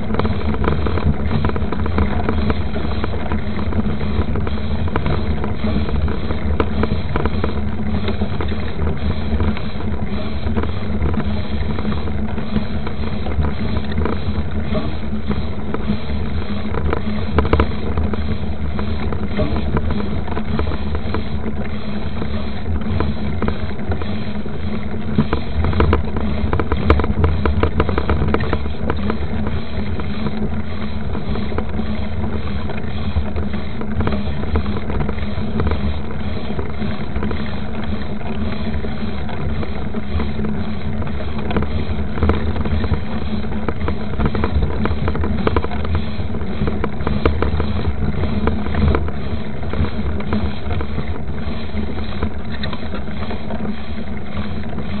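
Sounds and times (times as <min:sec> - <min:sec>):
bike rattles and knocks: 0:00.0 - 0:55.0
bike tyre and wind rumble: 0:00.0 - 0:55.0.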